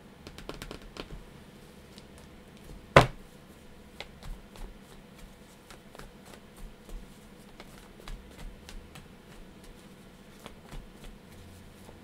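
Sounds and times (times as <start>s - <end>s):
cards shuffled by hand: 4.0s - 12.0s.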